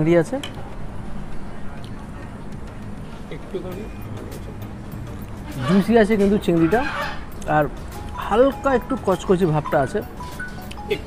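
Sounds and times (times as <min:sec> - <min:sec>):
man speaking: 0:05.5 - 0:10.1.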